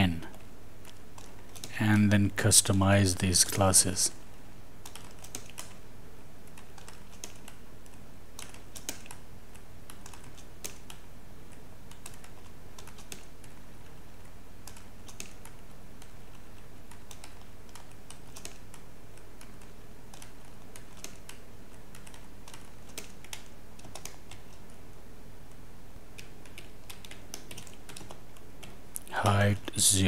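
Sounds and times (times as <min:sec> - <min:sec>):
low electrical hum: 0:00.0 - 0:30.0
computer keyboard clicks: 0:00.3 - 0:01.7, 0:04.8 - 0:05.8, 0:06.5 - 0:14.0, 0:14.6 - 0:24.8, 0:26.2 - 0:29.0.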